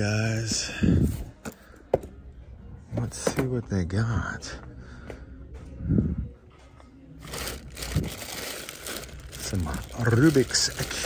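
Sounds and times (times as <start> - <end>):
plastic bags crinkling: 7.2 - 11.0.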